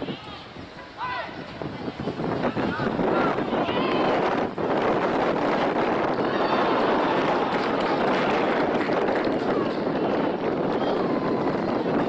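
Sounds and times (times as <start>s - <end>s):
outdoor noise: 0.0s - 12.0s.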